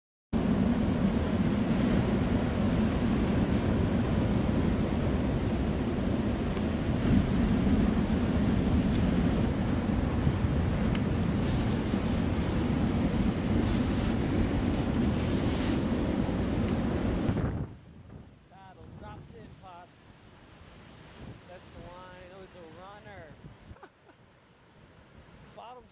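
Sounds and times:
wind buffeting microphone: 0.4s - 19.8s, 20.5s - 22.3s
ocean surf breaking: 0.4s - 23.5s.

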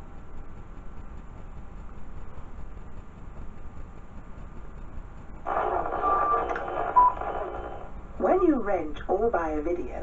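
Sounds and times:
low hum: 0.0s - 10.0s
static-like hiss: 0.0s - 10.0s
tape hiss: 0.0s - 10.0s.

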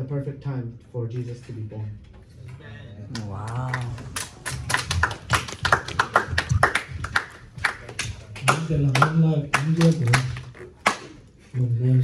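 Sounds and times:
people clapping: 3.1s - 11.3s.

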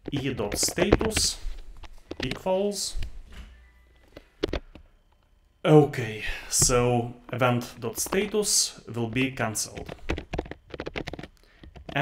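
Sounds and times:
computer keyboard typing: 0.0s - 1.4s, 7.8s - 12.0s.

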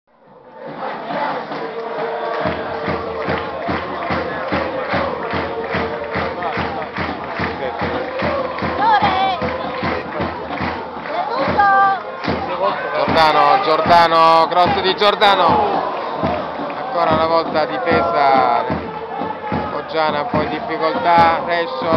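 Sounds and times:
crowd chanting: 0.1s - 21.9s
fast steady drum beat: 1.4s - 21.9s.

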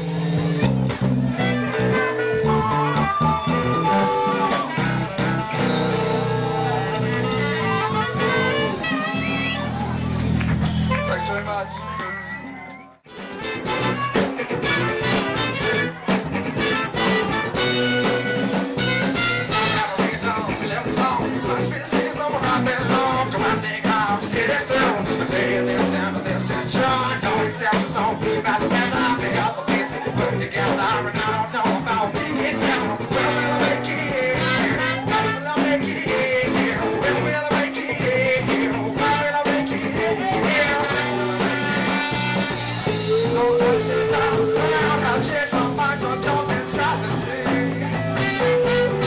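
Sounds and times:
band playing jazz-funk: 0.0s - 49.0s
person singing: 1.4s - 9.8s, 13.4s - 49.0s.

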